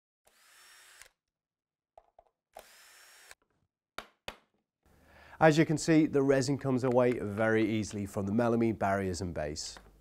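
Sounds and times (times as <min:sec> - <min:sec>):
power drill whirring: 0:00.2 - 0:01.2, 0:02.5 - 0:03.4.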